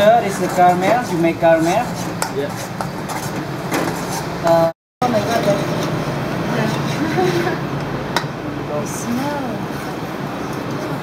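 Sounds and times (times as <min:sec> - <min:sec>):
spoon stirring caramel: 0:00.0 - 0:04.3.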